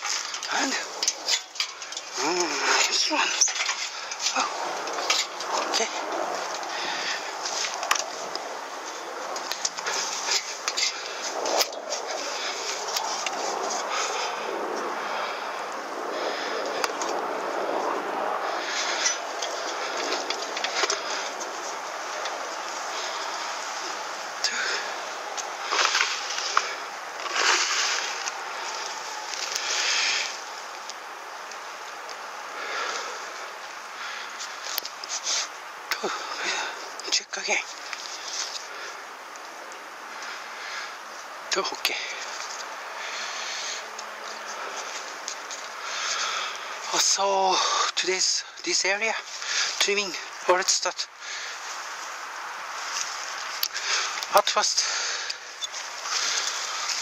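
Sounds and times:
branches brushing camera: 0.0 - 15.0, 16.5 - 37.0, 51.3 - 57.0
steady hiss: 0.0 - 57.0.

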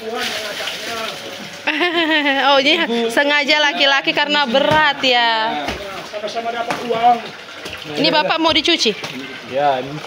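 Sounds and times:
water splashing and running: 0.0 - 10.0.

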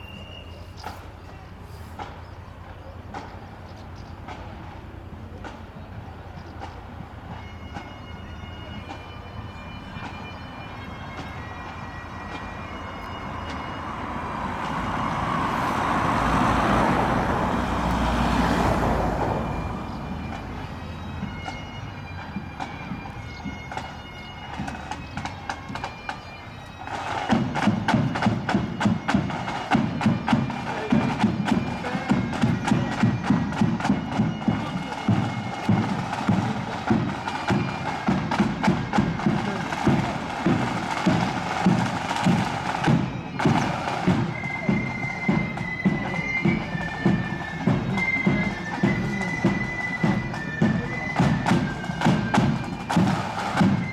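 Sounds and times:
marching band playing: 0.0 - 53.9.

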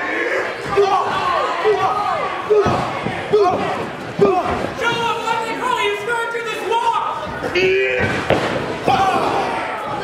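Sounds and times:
sharp wrestling impacts: 7.2 - 10.0.

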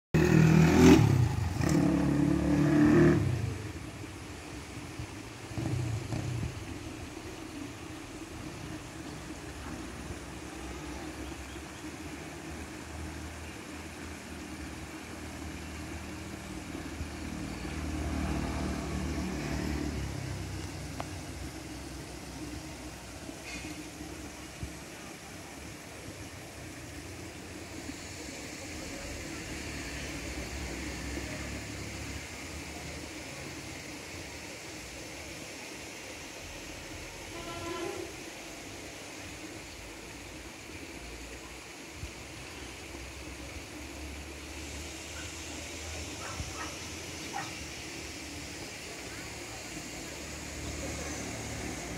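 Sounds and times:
faint high hiss: 0.2 - 51.9.

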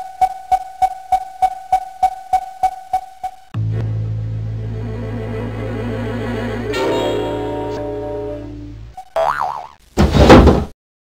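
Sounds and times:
wobbling boing tone: 9.2 - 9.8
loud crash-like thud: 10.0 - 10.7.

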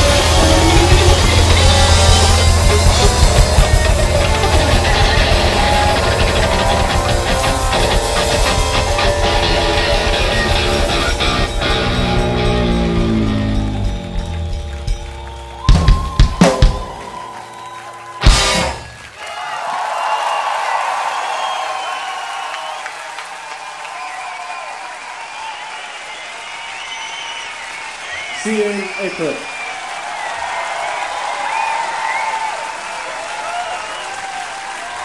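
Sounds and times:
live rock band playing: 0.0 - 19.1
crowd cheering and applauding: 0.0 - 35.0.

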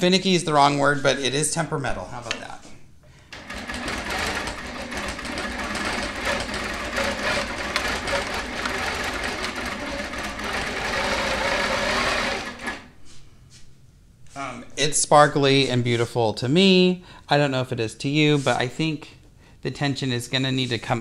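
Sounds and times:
quilting machine needle rattle: 3.3 - 12.9.

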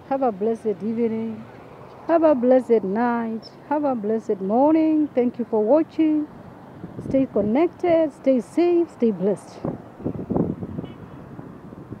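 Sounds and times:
wind buffeting microphone: 4.6 - 8.1, 8.7 - 12.0.

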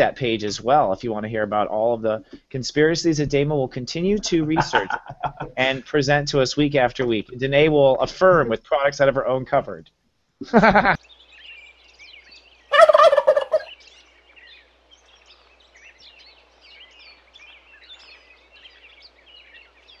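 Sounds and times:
turkey gobbling: 4.6 - 5.2, 12.7 - 13.8.

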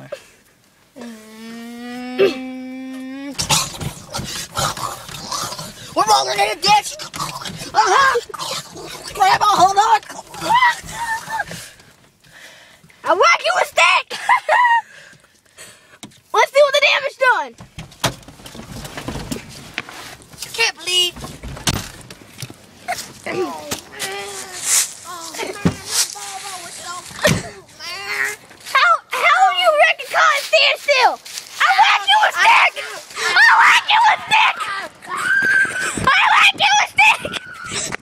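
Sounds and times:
child laughing: 1.0 - 3.5, 9.1 - 11.6, 14.0 - 14.9, 22.9 - 26.2, 36.9 - 38.0
child squealing: 6.0 - 8.3, 8.9 - 11.6, 31.6 - 38.0
rustling and light knocks: 17.6 - 27.8.

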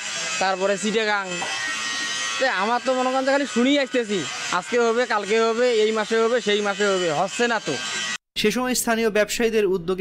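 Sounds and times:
man speaking: 8.4 - 10.0.

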